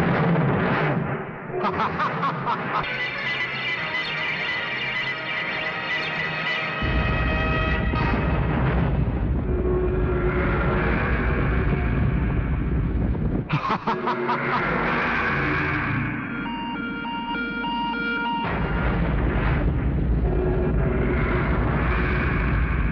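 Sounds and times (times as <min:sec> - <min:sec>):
tense film music: 0:00.0 - 0:22.9
loud low rumble: 0:06.8 - 0:16.3, 0:18.4 - 0:22.9
short electronic beeps: 0:16.3 - 0:18.5.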